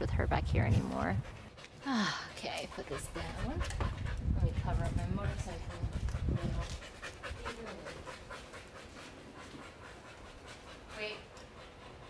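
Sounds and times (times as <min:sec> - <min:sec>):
dog panting: 0:00.9 - 0:12.0
low rumble: 0:03.1 - 0:06.9.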